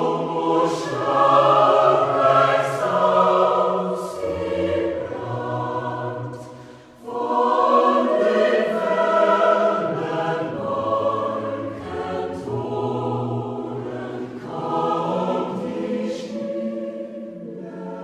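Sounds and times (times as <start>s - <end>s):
mixed choir singing: 0.0s - 18.0s.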